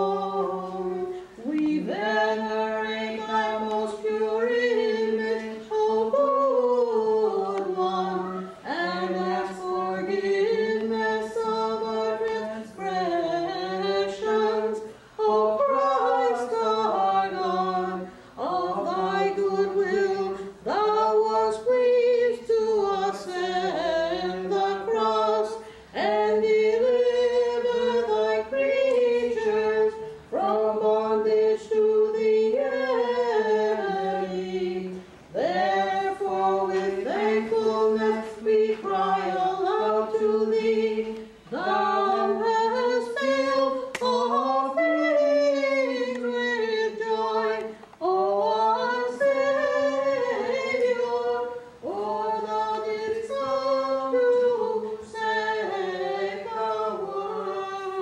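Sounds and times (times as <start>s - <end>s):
unaccompanied hymn singing: 0.0s - 58.0s.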